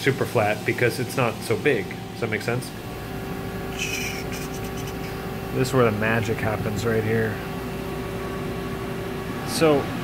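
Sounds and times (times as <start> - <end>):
milling machine humming: 0.0 - 10.0.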